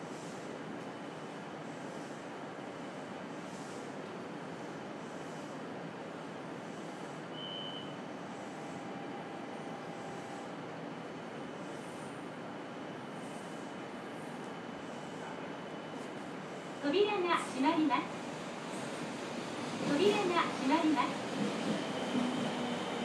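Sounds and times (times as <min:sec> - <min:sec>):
train equipment hum and hiss: 0:00.0 - 0:23.0
short high beep: 0:07.4 - 0:08.0.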